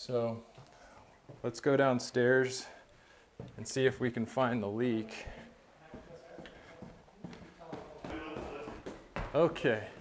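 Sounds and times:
footsteps down a staircase: 0.4 - 1.9, 2.6 - 10.0.

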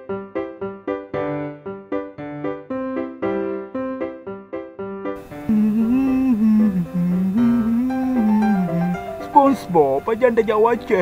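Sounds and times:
background music: 0.0 - 11.0
piano phrase: 0.0 - 11.0
person humming a tune: 5.2 - 9.4.

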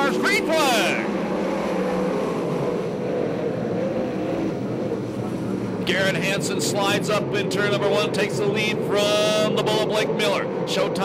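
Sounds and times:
racing car engines: 0.0 - 11.0.

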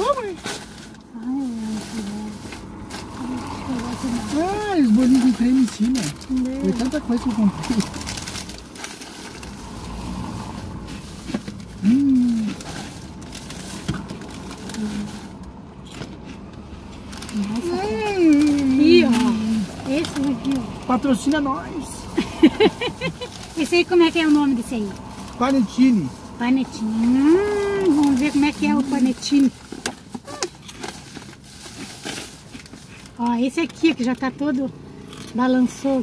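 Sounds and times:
plastic packaging crinkling: 0.0 - 10.0, 10.7 - 16.0, 16.8 - 33.8
person humming: 11.8 - 12.6, 27.0 - 28.0
woman laughing: 22.1 - 23.4
faint clicks and rustles: 22.4 - 36.0.

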